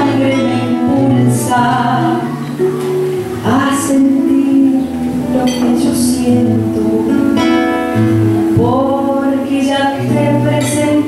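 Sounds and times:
acoustic guitar: 0.0 - 11.0
woman singing into a microphone: 0.0 - 11.0.

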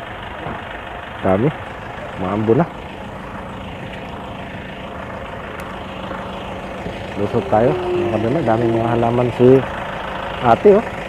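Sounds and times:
low mechanical rumble: 0.0 - 11.0.

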